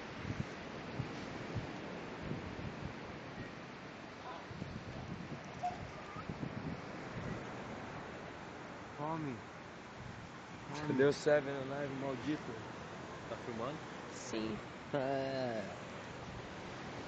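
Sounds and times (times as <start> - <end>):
surf on a beach: 0.0 - 17.0
wind: 0.0 - 17.0.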